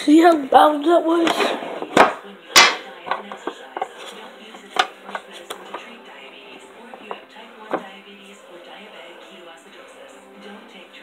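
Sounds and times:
faint television: 0:00.0 - 0:11.0.

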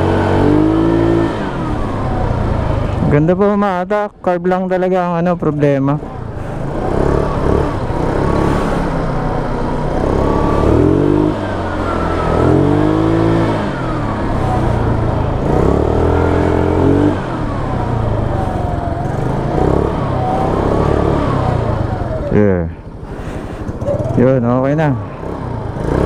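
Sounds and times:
scooter engine revving: 0:00.0 - 0:03.6, 0:05.5 - 0:26.0.

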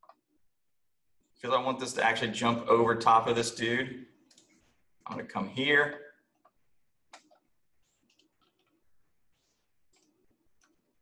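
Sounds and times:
computer mouse and keyboard clicks: 0:00.0 - 0:00.2, 0:04.2 - 0:04.7, 0:06.3 - 0:11.0.

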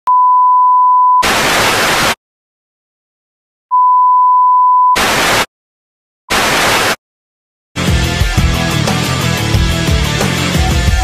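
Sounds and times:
tv static hiss: 0:01.2 - 0:02.2, 0:05.0 - 0:05.5, 0:06.3 - 0:07.0.

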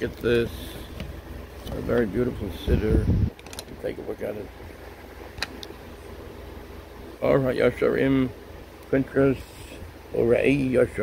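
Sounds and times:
phone handling rumble: 0:00.9 - 0:04.0
sharp handling click: 0:03.3 - 0:03.8.

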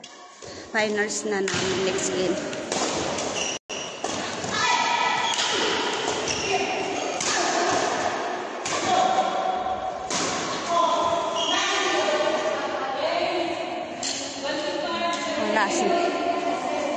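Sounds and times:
woman speaking: 0:00.7 - 0:02.5, 0:14.3 - 0:16.9
sharp thuds in echoing hall: 0:01.4 - 0:12.5.

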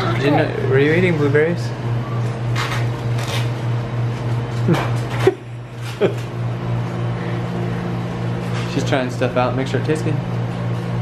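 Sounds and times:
kitchen machinery hum: 0:00.0 - 0:11.0.

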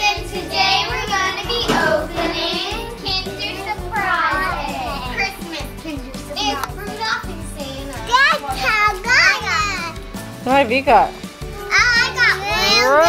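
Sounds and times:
children singing: 0:00.0 - 0:05.8.

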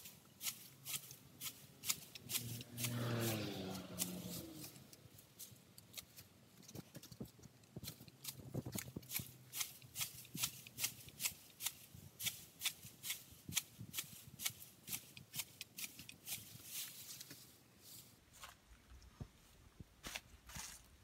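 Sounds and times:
hand shears snipping grass: 0:00.0 - 0:17.4.

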